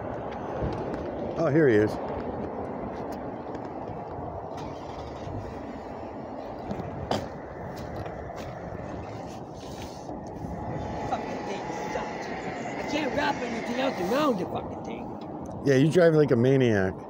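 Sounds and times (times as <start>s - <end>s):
road traffic rumble: 0.0s - 17.0s.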